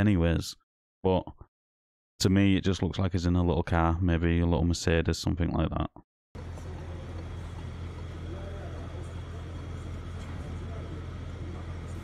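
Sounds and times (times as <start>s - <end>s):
outdoor street noise: 6.4s - 12.0s
road traffic rumble: 6.4s - 12.0s.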